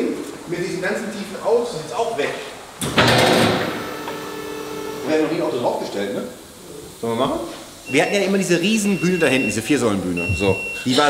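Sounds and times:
hydraulic power unit humming: 0:02.8 - 0:07.0.

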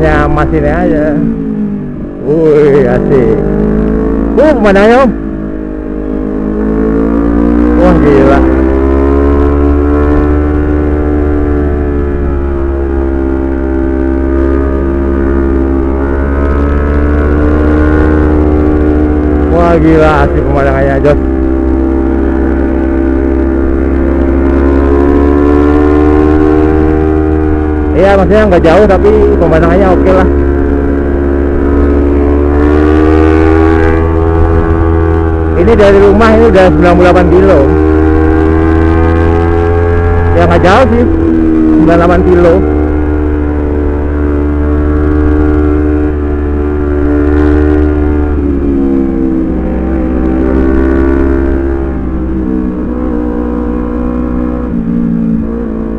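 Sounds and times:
motorcycle engine running: 0:00.0 - 0:55.9.

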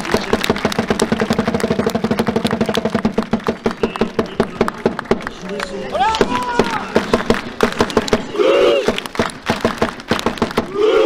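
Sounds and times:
drums beaten in a fast roll: 0:00.0 - 0:05.3, 0:06.2 - 0:10.8
crowd singing a long note: 0:10.6 - 0:11.0.

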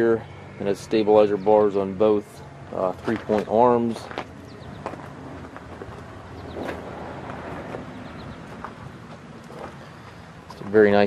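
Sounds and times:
footsteps on gravel: 0:02.7 - 0:11.0.

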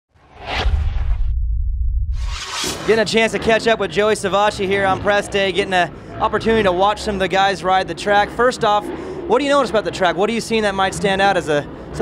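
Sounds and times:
whoosh: 0:00.1 - 0:03.4
deep rumble: 0:00.2 - 0:05.4.

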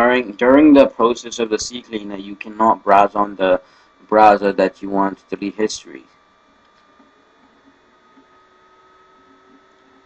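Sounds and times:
faint electrical hum and hiss: 0:00.0 - 0:10.0.

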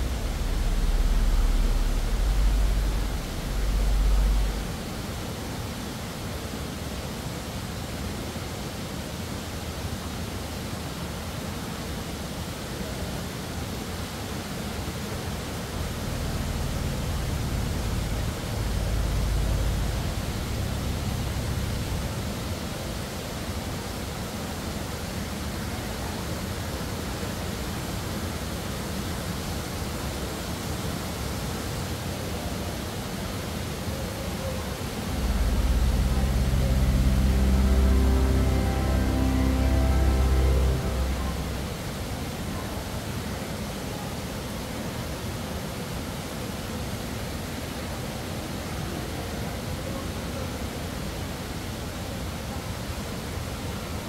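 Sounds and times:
low rumble: 0:00.0 - 0:05.4, 0:15.4 - 0:23.4, 0:34.9 - 0:42.5
steady background hiss: 0:00.0 - 0:54.0.

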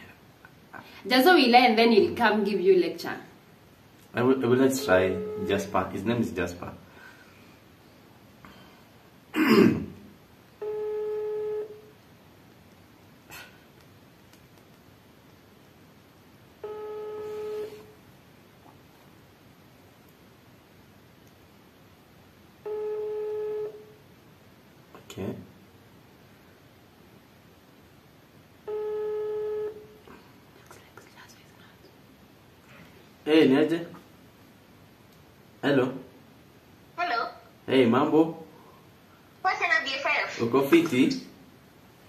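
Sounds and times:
phone ringback beep: 0:04.7 - 0:05.9, 0:10.6 - 0:11.9, 0:16.6 - 0:18.0, 0:22.6 - 0:23.9, 0:28.6 - 0:29.9.

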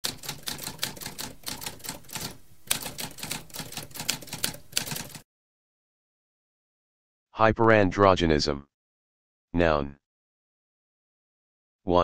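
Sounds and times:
typewriter keystrokes: 0:00.0 - 0:05.2.

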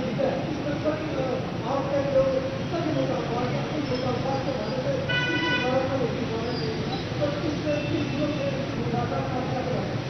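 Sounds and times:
vehicle horn honk: 0:05.1 - 0:05.8.

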